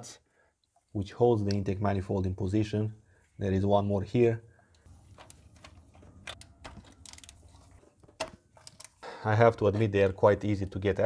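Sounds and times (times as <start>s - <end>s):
ratchet clicks: 6.3s - 7.6s, 8.6s - 9.0s.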